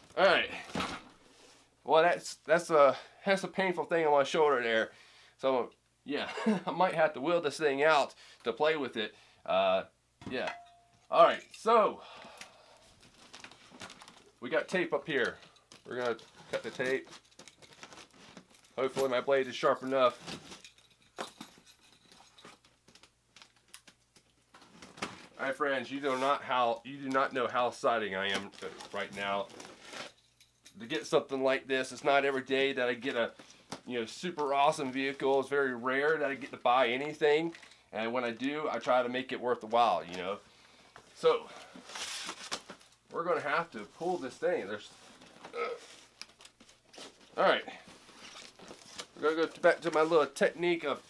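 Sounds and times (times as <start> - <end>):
short vocal sound: 45.5 - 45.9.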